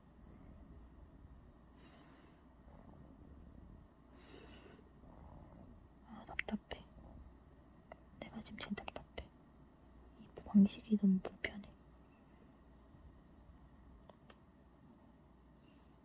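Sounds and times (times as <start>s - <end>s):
person whispering: 6.0s - 7.3s, 7.9s - 9.3s, 10.2s - 11.8s.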